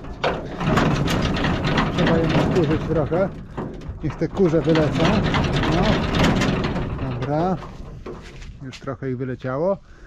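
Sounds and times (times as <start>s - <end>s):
combine harvester running: 0.0s - 8.6s.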